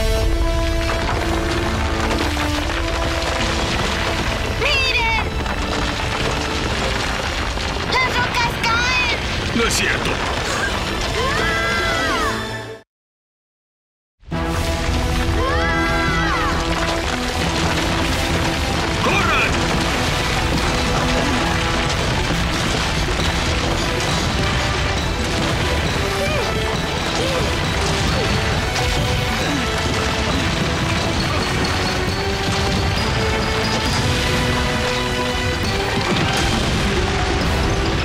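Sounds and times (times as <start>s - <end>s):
falling rocks crashing and rumbling: 0.0s - 12.1s, 14.4s - 38.0s
background music: 11.2s - 12.8s, 14.3s - 38.0s.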